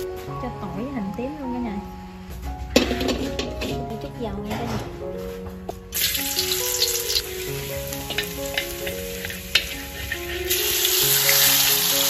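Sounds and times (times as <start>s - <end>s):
background music light melody: 0.0s - 12.0s.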